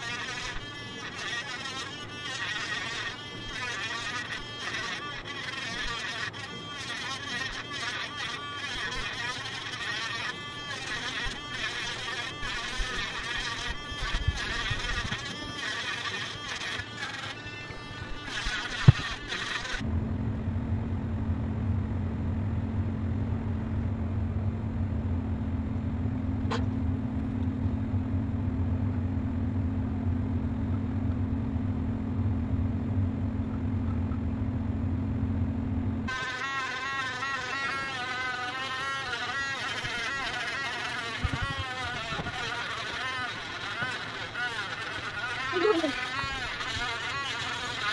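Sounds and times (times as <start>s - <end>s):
electric engraver buzzing: 0.0s - 19.9s, 36.0s - 47.9s
steady low hum: 0.0s - 47.9s.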